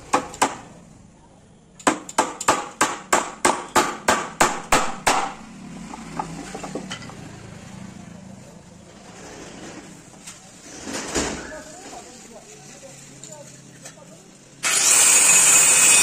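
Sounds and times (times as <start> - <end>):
hammer nailing wood: 0.1 - 0.7, 1.8 - 5.4.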